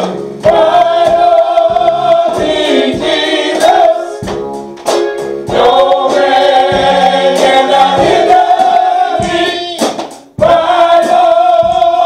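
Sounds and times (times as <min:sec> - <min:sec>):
women singing gospel: 0:00.4 - 0:04.3, 0:05.5 - 0:12.0.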